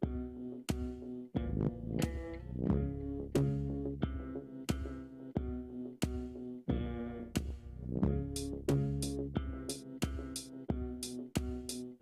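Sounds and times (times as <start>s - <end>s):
synthesizer chords with steady beat: 7.3s - 12.0s.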